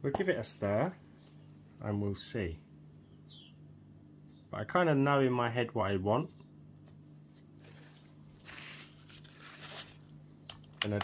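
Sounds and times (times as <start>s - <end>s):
steady low hum: 0.0s - 11.0s
scratchy rustle of stirring: 7.3s - 10.1s.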